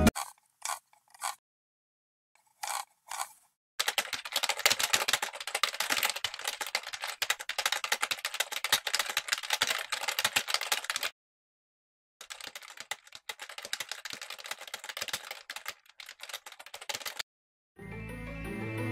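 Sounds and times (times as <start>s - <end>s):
fast typing on keyboard: 2.6s - 11.1s, 12.2s - 17.2s.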